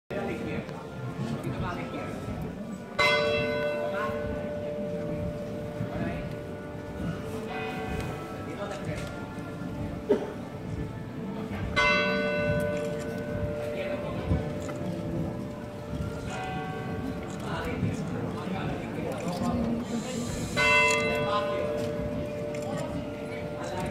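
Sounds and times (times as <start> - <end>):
crowd chatter: 0.1 - 23.9.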